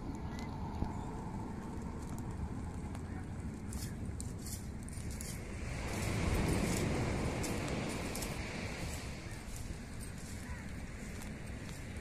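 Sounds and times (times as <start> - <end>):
fire crackling and snapping: 0.0 - 12.0
wind on microphone: 0.0 - 12.0.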